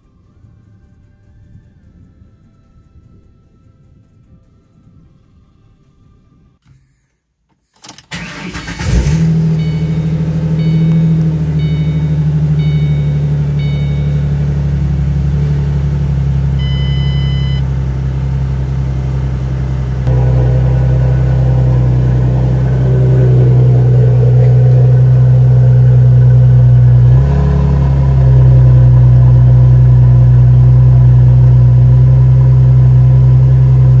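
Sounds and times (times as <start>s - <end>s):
car engine starting and idling: 7.8s - 34.0s
engine throttle blip: 8.1s - 34.0s
dashboard warning chimes: 8.8s - 28.4s.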